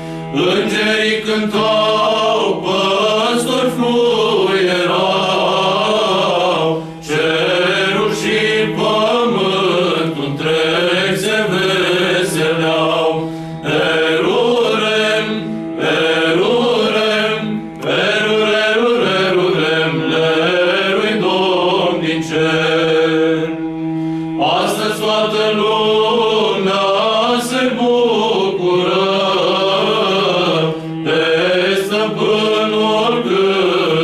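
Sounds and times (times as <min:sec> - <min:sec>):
male choir singing a carol: 0:00.0 - 0:34.0.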